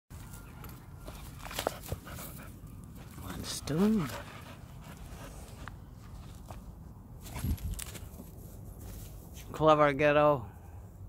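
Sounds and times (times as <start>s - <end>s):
footsteps on dry grass: 0.1s - 9.5s.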